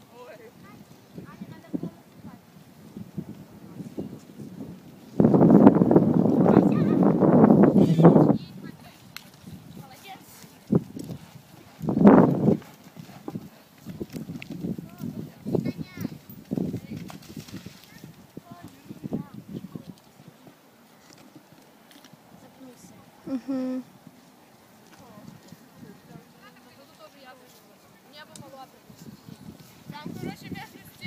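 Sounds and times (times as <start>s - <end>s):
hoofbeats on sand: 7.6s - 20.3s
low voices: 22.5s - 23.9s.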